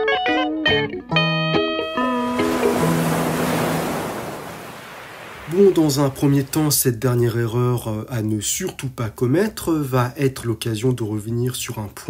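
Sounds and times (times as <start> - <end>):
ocean wave rushing: 2.0 - 7.0.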